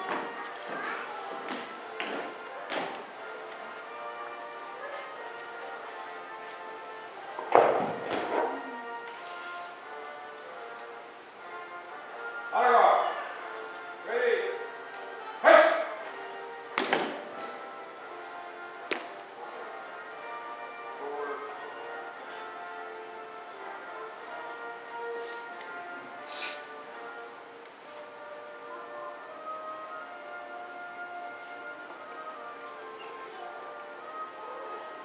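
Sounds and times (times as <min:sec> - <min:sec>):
music with sustained tones: 0:00.0 - 0:35.0
person shouting a command: 0:15.4 - 0:16.0
flagstaffs knocking into stands: 0:16.8 - 0:17.4.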